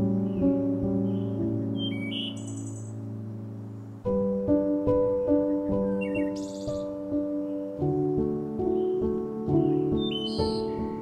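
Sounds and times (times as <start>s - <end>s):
ambient background music: 0.0s - 11.0s
bird chirp and trill: 0.0s - 11.0s.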